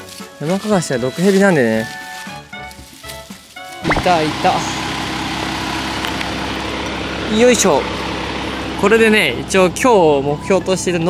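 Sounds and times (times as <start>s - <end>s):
engine idling hum: 3.8s - 11.0s.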